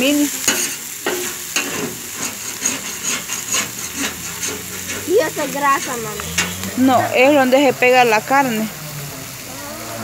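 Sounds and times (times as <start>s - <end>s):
steaks sizzling: 0.0s - 10.0s
metal spatula scraping a griddle: 0.3s - 7.4s.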